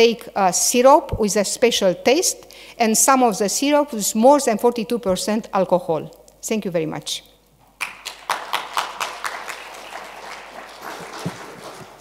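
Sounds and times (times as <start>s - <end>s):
audience applauding: 7.8s - 12.0s.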